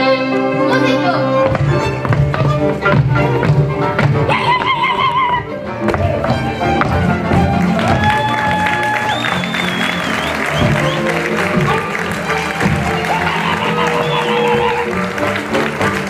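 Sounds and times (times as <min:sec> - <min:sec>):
clarinet melody: 0:00.0 - 0:16.0
double bass: 0:00.0 - 0:16.0
violin: 0:00.0 - 0:16.0.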